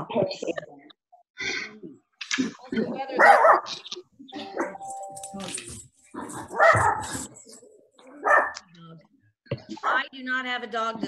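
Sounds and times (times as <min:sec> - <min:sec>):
dog barking: 0:03.2 - 0:03.7, 0:06.3 - 0:07.3, 0:08.2 - 0:08.6.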